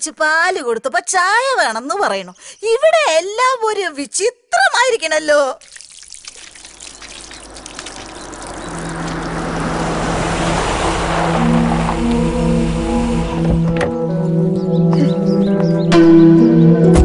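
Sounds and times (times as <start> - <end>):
rushing noise: 6.6 - 14.1
low rumble: 6.8 - 14.5
sustained synth notes: 6.8 - 15.4.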